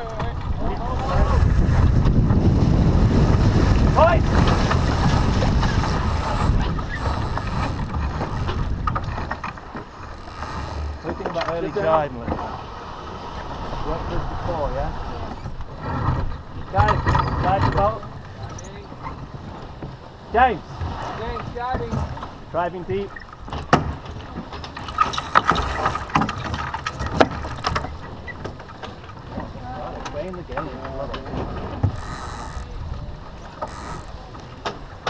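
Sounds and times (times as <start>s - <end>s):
low microphone rumble: 0.0s - 12.8s
water rushing along hull: 0.0s - 35.0s
wind buffeting microphone: 0.0s - 35.0s.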